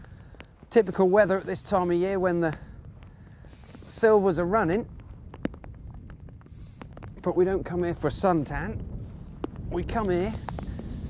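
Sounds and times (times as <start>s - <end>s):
fly reel clicking: 0.0s - 2.6s, 3.4s - 4.7s, 6.5s - 7.0s, 9.9s - 11.0s
short hiss: 0.7s - 2.6s, 3.3s - 4.6s, 9.9s - 11.0s.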